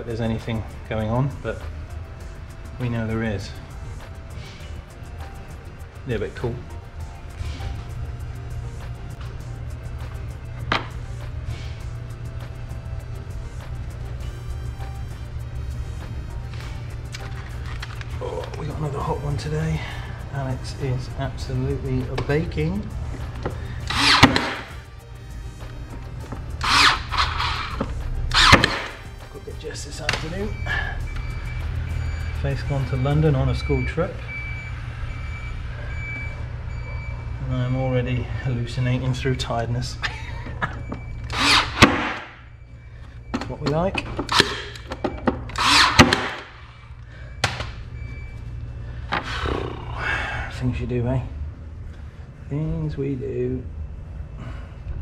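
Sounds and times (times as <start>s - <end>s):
background music: 0.0s - 52.7s
nail gun firing: 23.9s - 24.7s, 28.3s - 29.0s, 41.3s - 42.2s, 45.5s - 46.5s.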